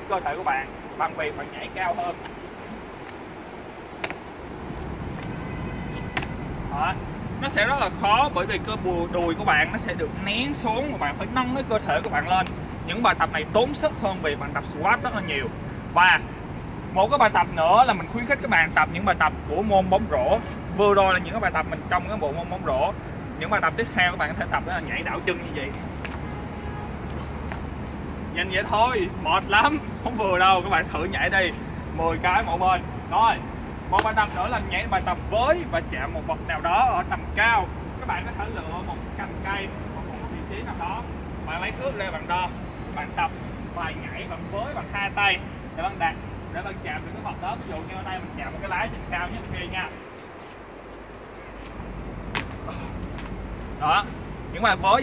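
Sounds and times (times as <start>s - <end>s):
traffic rumble: 0.0s - 55.0s
sneakers thudding on paving: 3.8s - 6.5s, 51.6s - 53.4s.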